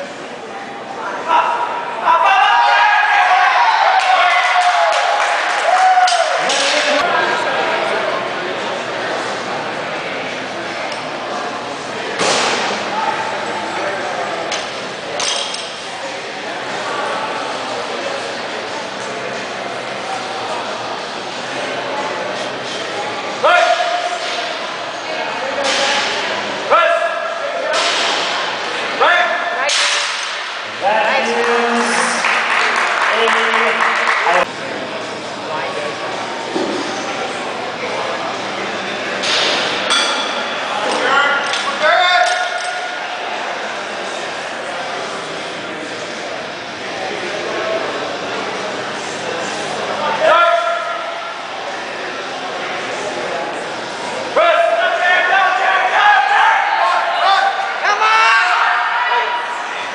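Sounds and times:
echoing hall background noise: 0.0s - 59.9s
people yelling loudly: 1.2s - 7.0s, 54.4s - 59.9s.

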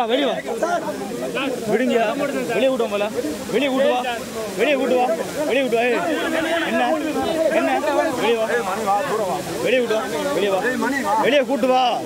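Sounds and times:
men talking excitedly: 0.0s - 12.0s
waterfall hissing: 0.0s - 12.0s.

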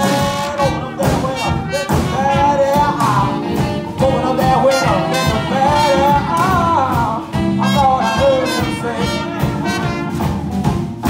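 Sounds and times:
man singing: 0.0s - 10.1s
jazz band playing blues: 0.0s - 11.0s.

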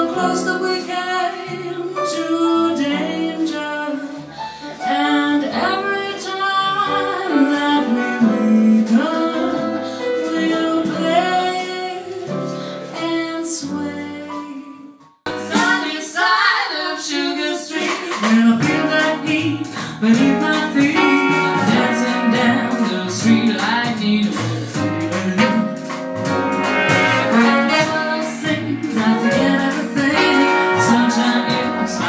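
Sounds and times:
big band jazz: 0.0s - 14.7s, 15.3s - 32.0s.

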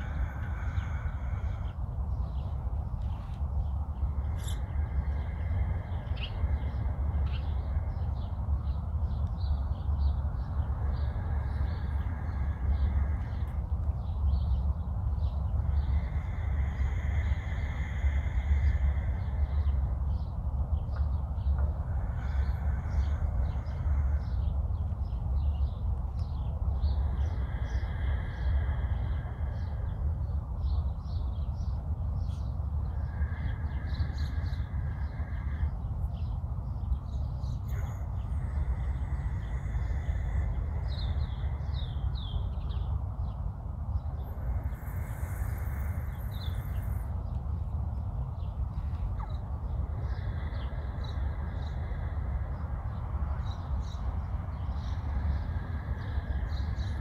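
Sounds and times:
birds chirping: 0.0s - 57.0s
wind rumble on microphone: 0.0s - 57.0s.

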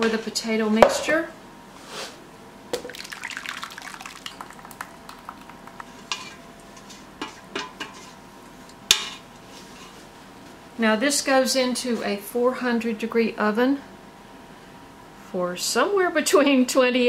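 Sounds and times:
utensil knocking against bowl: 0.8s - 1.1s.

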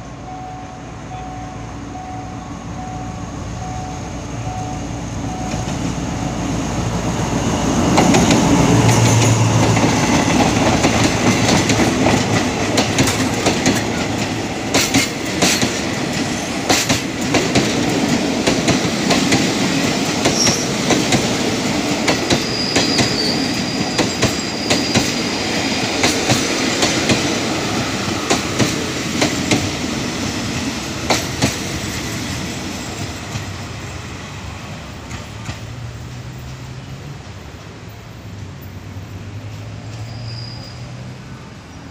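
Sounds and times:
diesel locomotive engine passing: 0.0s - 41.9s
wheels clacking over rail joints: 7.0s - 33.6s.

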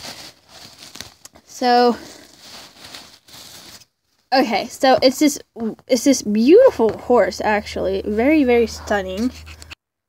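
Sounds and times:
bubble wrap crackling: 0.0s - 4.4s.

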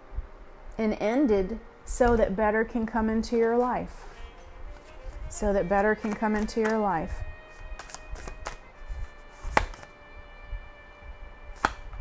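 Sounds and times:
cards snapping and tapping: 6.0s - 6.9s, 7.7s - 8.6s, 9.4s - 9.9s, 11.6s - 12.0s.

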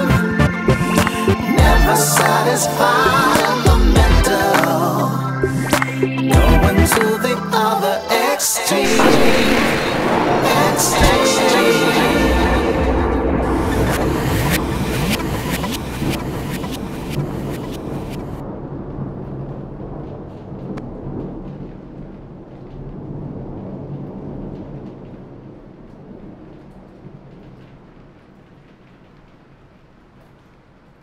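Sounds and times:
electronic beat: 0.2s - 2.4s
low rumbling drone: 8.8s - 17.1s.

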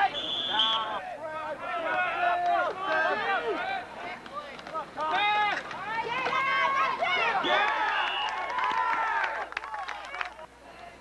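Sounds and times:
people shouting and yelling: 0.0s - 11.0s.

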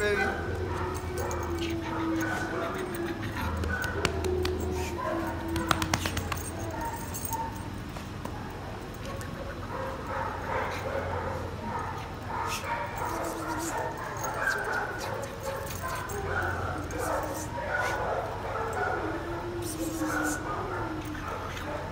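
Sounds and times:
dogs barking: 0.0s - 21.9s
dogs whining: 0.0s - 21.9s.

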